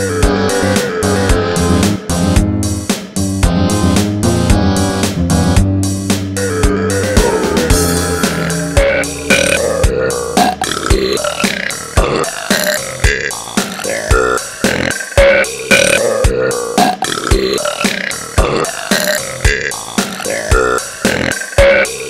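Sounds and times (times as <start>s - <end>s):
electronic disco backing track: 0.2s - 22.0s
drum hits: 7.2s - 9.7s, 10.4s - 12.2s
girls burping: 8.8s - 21.4s.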